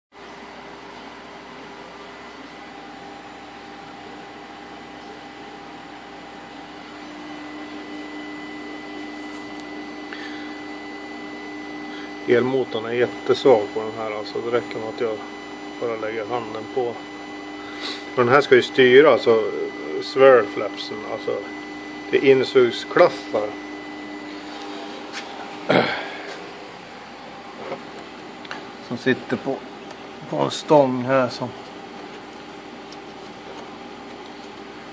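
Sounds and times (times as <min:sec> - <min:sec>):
actuator motor humming: 0:00.2 - 0:34.9.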